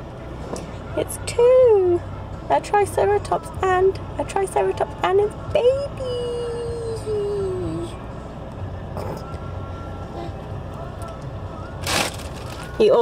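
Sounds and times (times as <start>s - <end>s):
low hum inside car: 0.0s - 13.0s.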